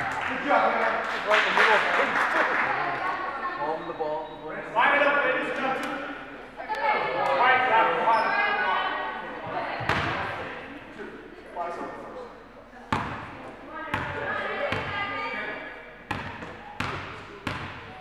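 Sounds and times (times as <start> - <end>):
voices of players and spectators: 0.0 - 18.0.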